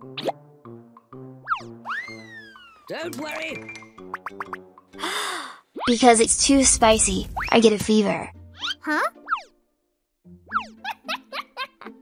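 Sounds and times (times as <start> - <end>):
playful cartoon music: 0.0 - 12.0.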